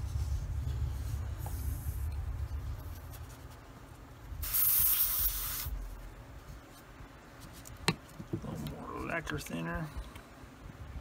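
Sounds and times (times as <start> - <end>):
airbrush spraying: 4.4 - 5.8.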